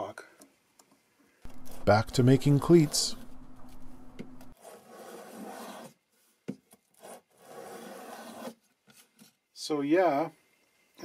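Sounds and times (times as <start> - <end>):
hand plane shaving wood: 7.0 - 8.5.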